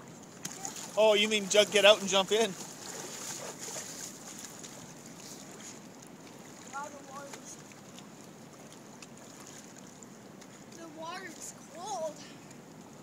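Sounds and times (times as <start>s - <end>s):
light water splashing: 0.0s - 13.0s
running water rushing: 0.0s - 13.0s.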